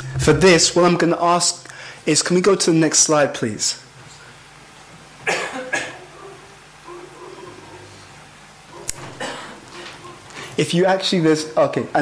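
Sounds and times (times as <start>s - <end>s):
man coughing: 5.2s - 6.1s, 9.2s - 9.6s.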